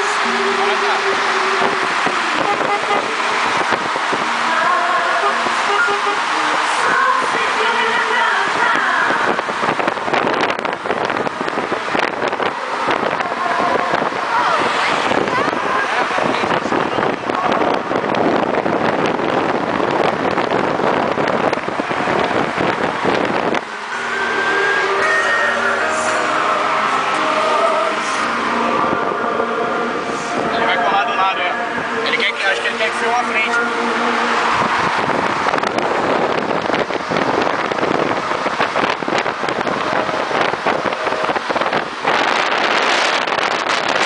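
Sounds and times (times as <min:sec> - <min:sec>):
music: 0:00.0 - 0:15.6, 0:21.2 - 0:41.5
cars driving past: 0:00.0 - 0:44.0
road and wind noise: 0:00.0 - 0:44.0
voices: 0:00.0 - 0:44.0.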